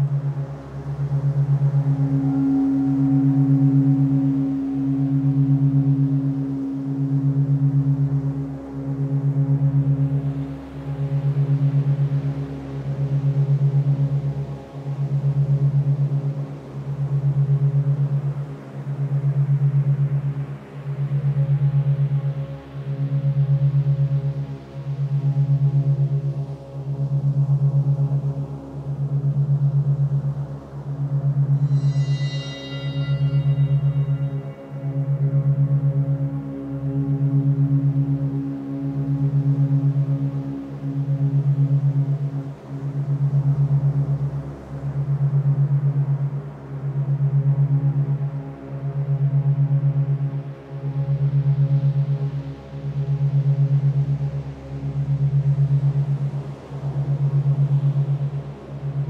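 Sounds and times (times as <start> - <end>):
low pulsing meditation drone: 0.0 - 59.0
soft sustained higher tones: 0.0 - 59.0.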